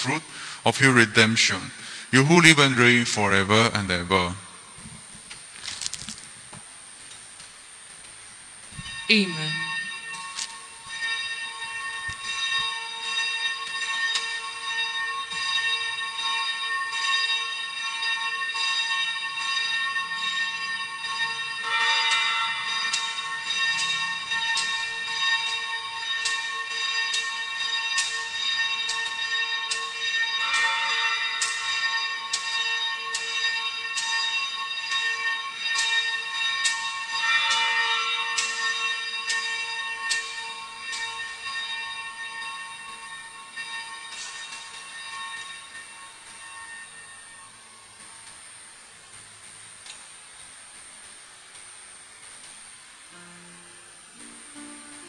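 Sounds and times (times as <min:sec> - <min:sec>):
altar bells ringing: 0:00.0 - 0:04.8, 0:08.7 - 0:48.0.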